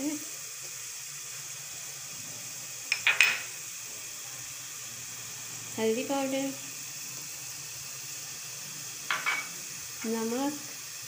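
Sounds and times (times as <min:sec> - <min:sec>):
oil sizzling in pot: 0:00.0 - 0:11.0.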